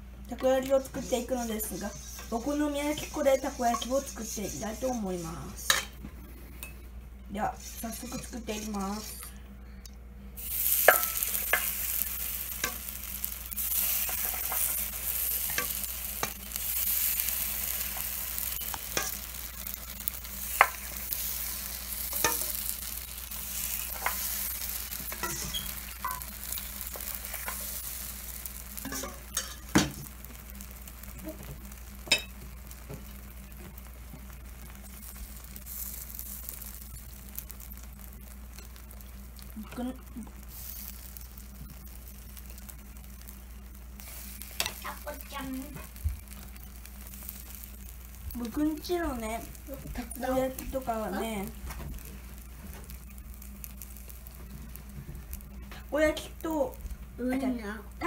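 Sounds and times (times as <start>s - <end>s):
batter sizzling in a hot pan: 0.0s - 9.4s, 10.3s - 58.0s.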